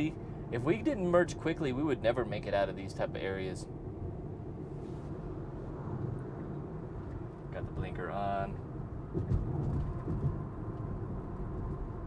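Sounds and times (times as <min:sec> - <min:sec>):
road and tyre rumble in car: 0:00.0 - 0:12.0.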